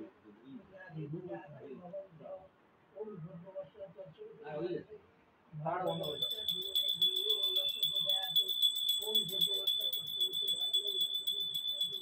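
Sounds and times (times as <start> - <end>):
hand bell ringing rapidly: 5.9 - 12.0
low voices: 5.9 - 12.0.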